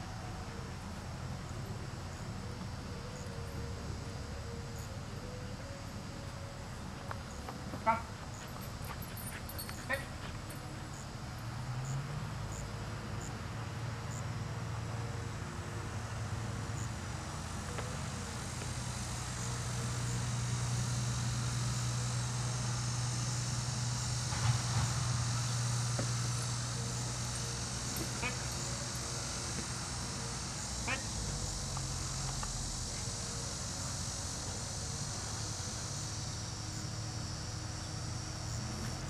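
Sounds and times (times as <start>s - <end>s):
insects buzzing: 0.0s - 39.0s
low motor hum: 0.0s - 39.0s.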